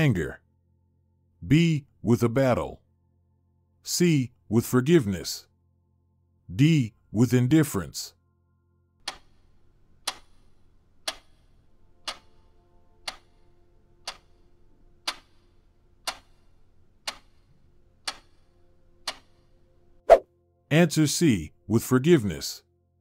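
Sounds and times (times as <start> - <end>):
clock ticking: 9.0 - 19.7.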